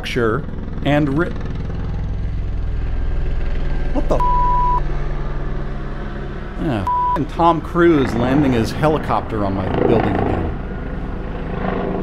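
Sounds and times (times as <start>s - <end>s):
helicopter rotor and engine drone: 0.0s - 12.0s.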